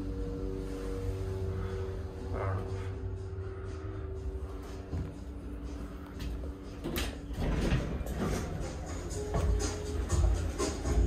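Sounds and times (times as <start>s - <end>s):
lift humming: 0.0s - 11.0s
lift doors sliding open: 6.7s - 11.0s.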